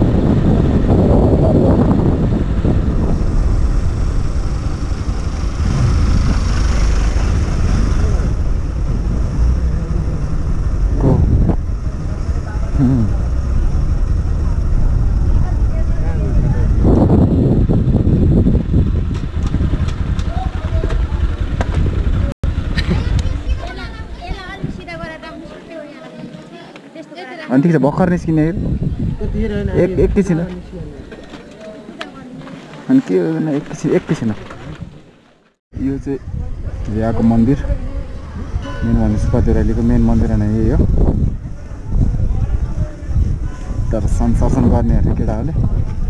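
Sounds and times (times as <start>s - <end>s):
motorcycle engine running: 0.0s - 24.1s
wind rumble on microphone: 0.0s - 25.3s, 28.0s - 31.1s, 35.7s - 46.0s.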